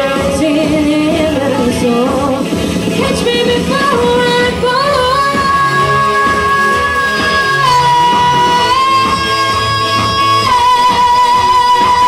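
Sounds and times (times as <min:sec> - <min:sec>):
live band playing: 0:00.0 - 0:12.0
person singing: 0:00.0 - 0:12.0.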